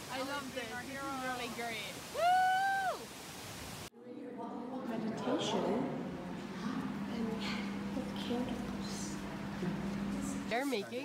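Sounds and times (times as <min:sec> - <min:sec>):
person whooping: 0:02.1 - 0:03.1.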